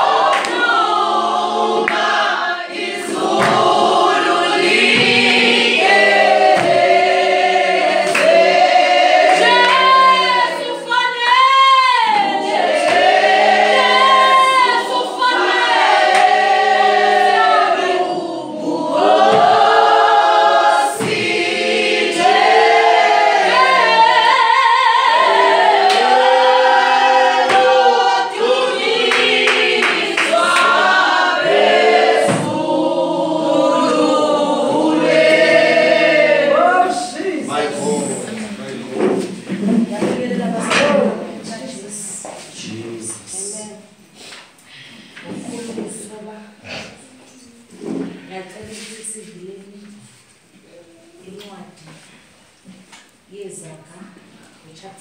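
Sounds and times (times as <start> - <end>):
choir singing gospel: 0.0 - 51.3.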